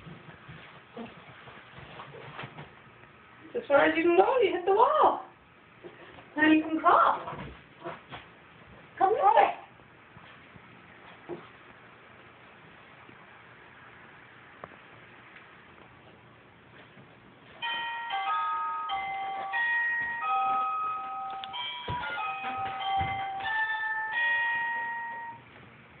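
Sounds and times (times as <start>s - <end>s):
bell-like tune: 17.6s - 25.4s.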